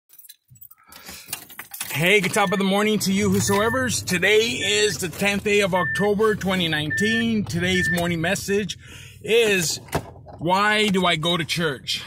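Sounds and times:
light clicks and jingling rattles: 0.1s - 3.7s
faint low rumble: 2.8s - 10.8s.

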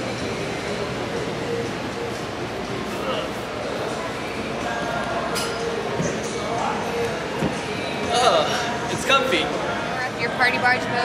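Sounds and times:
background chatter of shoppers: 0.0s - 11.0s.

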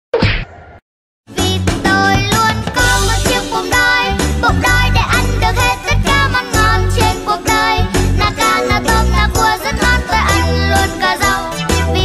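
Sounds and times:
music: 1.3s - 12.0s.

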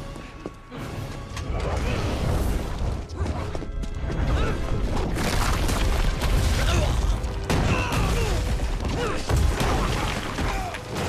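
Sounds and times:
action soundtrack music: 0.0s - 11.0s.

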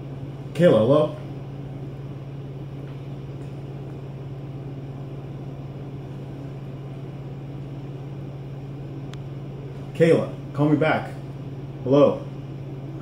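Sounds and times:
steady low-pitched hum: 0.0s - 13.0s.

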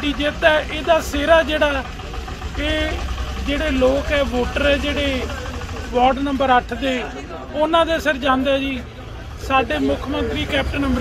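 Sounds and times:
vehicle engine idling: 0.0s - 11.0s
man speaking: 2.5s - 11.0s.

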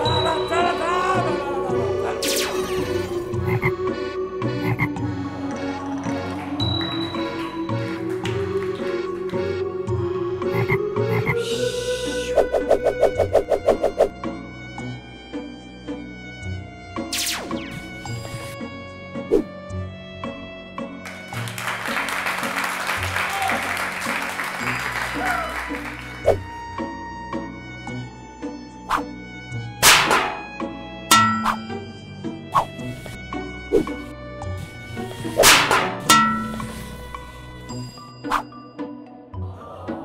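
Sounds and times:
music with held notes: 0.0s - 12.3s, 17.6s - 39.8s
frog croaking: 3.4s - 3.9s, 4.6s - 5.0s, 10.4s - 11.4s
sharp crack with hissing tail: 29.8s - 30.6s, 35.2s - 36.0s.

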